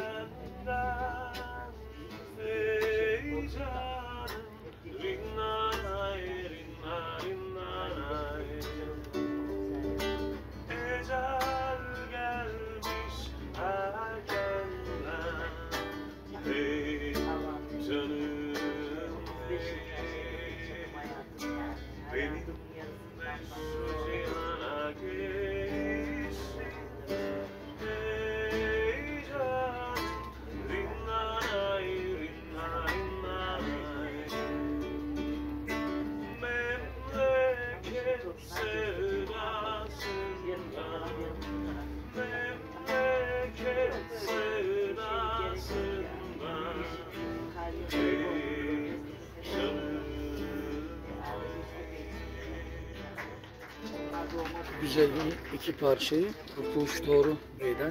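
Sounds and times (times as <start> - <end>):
man singing: 0.0 - 53.5, 54.8 - 57.9
acoustic guitar strumming: 0.0 - 57.9.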